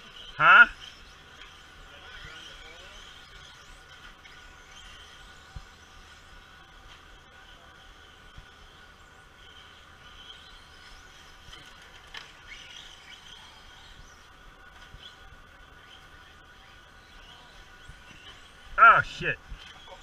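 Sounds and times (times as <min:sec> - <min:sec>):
radio-controlled cars whining: 0:00.0 - 0:20.0.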